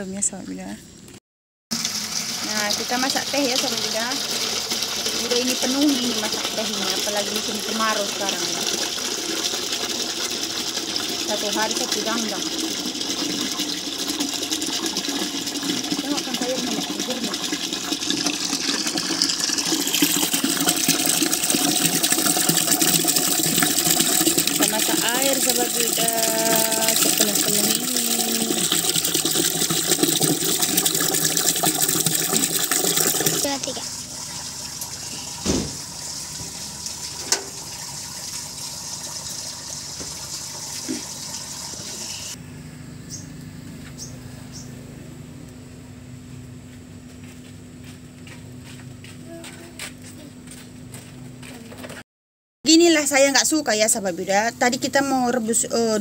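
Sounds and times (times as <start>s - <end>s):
water pouring into metal pot: 1.7s - 42.4s.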